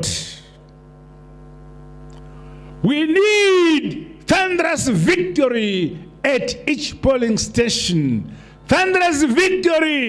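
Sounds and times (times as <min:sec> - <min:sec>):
man speaking: 0:00.0 - 0:00.6, 0:02.8 - 0:10.0
electrical mains hum: 0:00.0 - 0:10.0.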